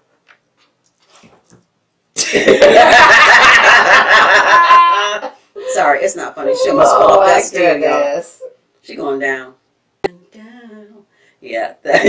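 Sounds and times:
women laughing loudly: 0:02.2 - 0:05.3.

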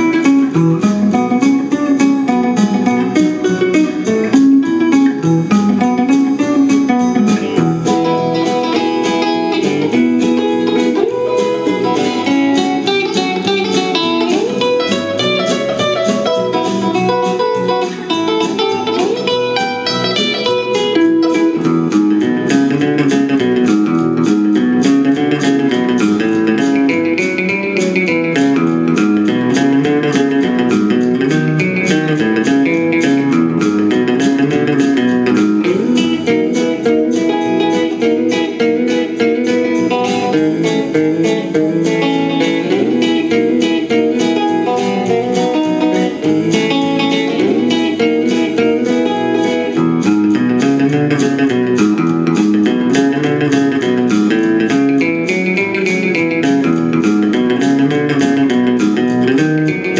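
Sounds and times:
electric guitar boogie: 0:00.0 - 0:59.9.

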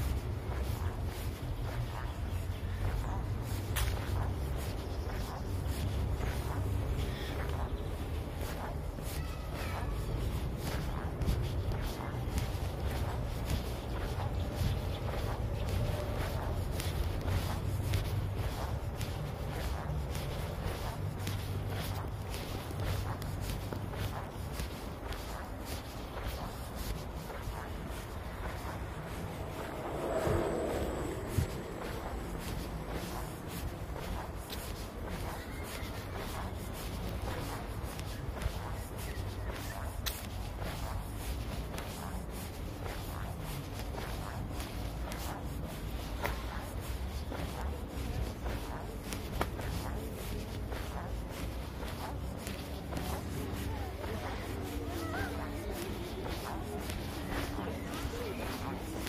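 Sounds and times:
footsteps on asphalt: 0:00.0 - 0:59.0.

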